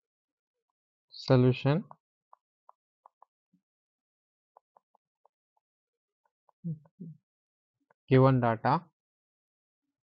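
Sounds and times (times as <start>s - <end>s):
stylus tapping on tablet screen: 1.8s - 3.4s, 4.6s - 7.0s.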